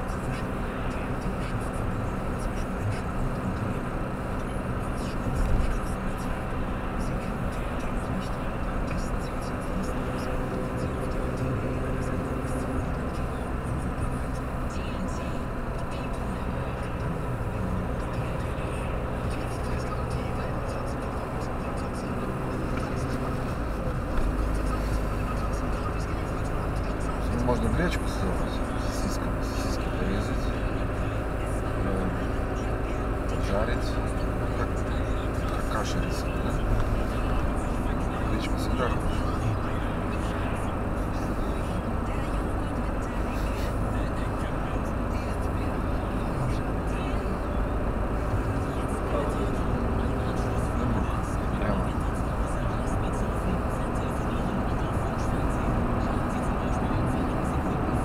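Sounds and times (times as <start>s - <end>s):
car road and engine drone: 0.0s - 58.0s.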